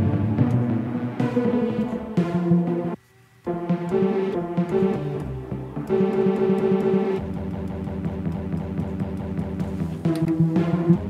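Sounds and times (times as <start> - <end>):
sustained low synth chord: 0.0 - 9.7.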